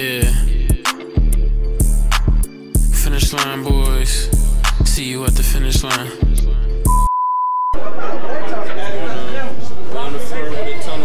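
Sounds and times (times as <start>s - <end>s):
crowd chatter: 7.8s - 11.0s.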